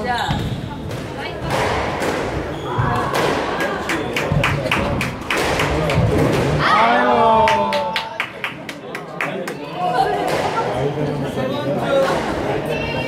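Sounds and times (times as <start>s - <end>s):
squash ball hitting rackets and walls: 0.2s - 6.6s
people talking: 8.8s - 13.0s.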